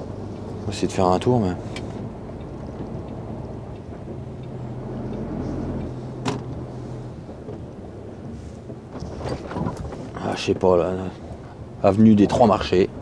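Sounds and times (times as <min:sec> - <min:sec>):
truck diesel engine running: 0:00.0 - 0:09.1.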